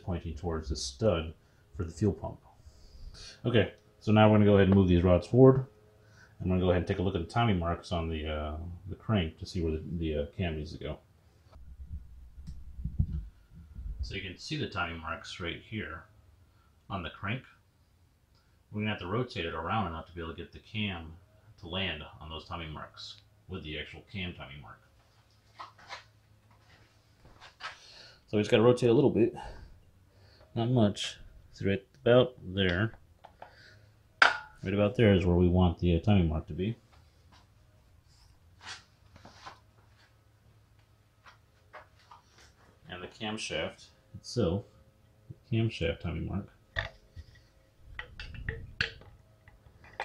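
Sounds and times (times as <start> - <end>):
faint low hum: 0.0 - 50.0
soft breath: 2.5 - 3.4, 29.4 - 30.6, 33.4 - 34.1.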